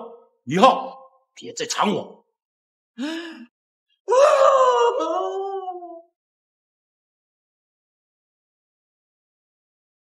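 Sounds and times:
person wailing: 4.1 - 6.0.

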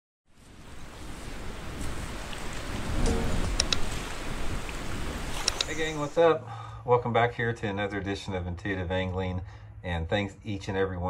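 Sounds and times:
rushing water: 0.4 - 6.3
short sharp clicks: 5.4 - 5.8.

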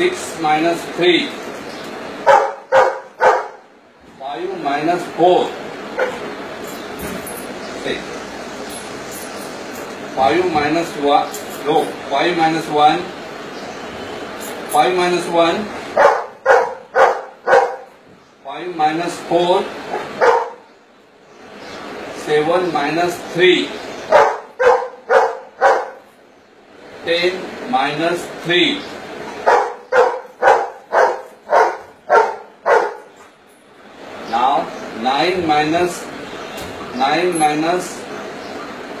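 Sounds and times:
dog barking: 2.2 - 3.6, 6.0 - 6.2, 16.0 - 17.9, 19.9 - 20.7, 24.1 - 26.1, 29.4 - 33.1.

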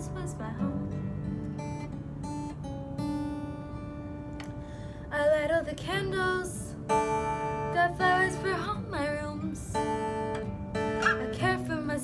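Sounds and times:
acoustic guitar chords ringing: 0.0 - 12.0.

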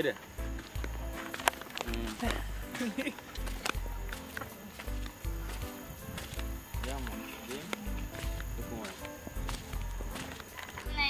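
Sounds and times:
voices: 0.0 - 11.0
music with deep pulsing bass: 1.9 - 11.0.

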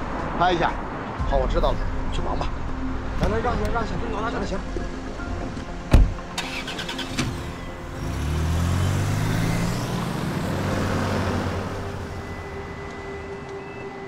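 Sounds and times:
car engine pulling away: 6.2 - 13.3.

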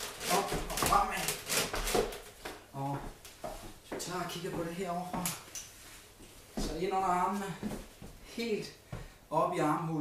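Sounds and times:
feet thudding on wooden floor: 8.9 - 9.2.

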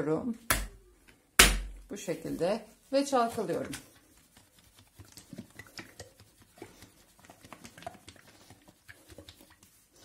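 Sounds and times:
plastic shampoo bottle shaken: 2.2 - 10.0.

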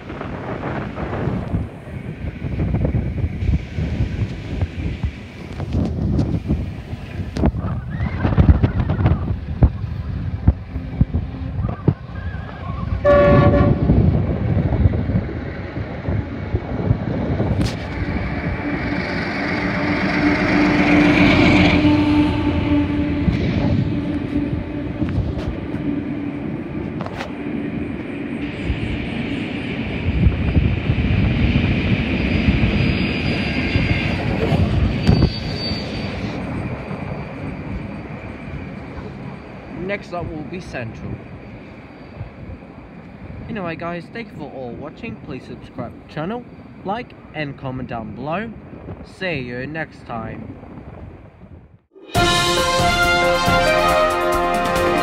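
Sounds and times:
locomotive engine rumble: 0.0 - 47.3
train running: 0.0 - 49.0, 50.5 - 55.0
locomotive horn blast: 13.0 - 14.0, 18.4 - 26.5, 52.0 - 55.0.

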